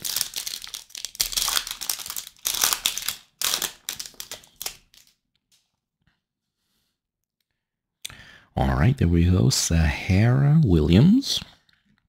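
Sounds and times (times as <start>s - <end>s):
wrapper tearing and crinkling: 0.0s - 5.2s.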